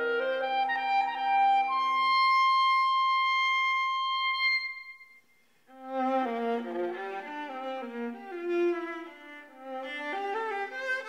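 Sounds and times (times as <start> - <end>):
viola and clarinet duo: 0.0 - 5.1, 5.7 - 11.0.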